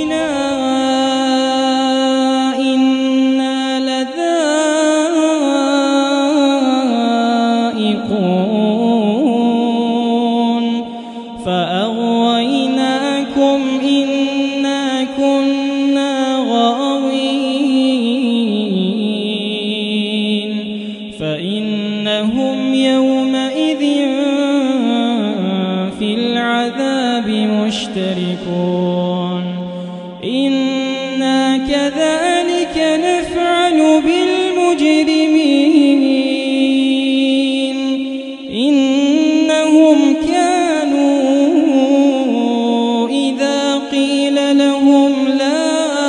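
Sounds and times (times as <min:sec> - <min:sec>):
man chanting melodically: 0:00.0 - 0:46.0.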